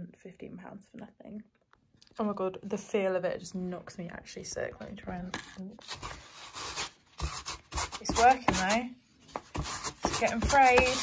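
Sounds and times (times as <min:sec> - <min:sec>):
sandpaper scraping denim: 0:05.9 - 0:11.0.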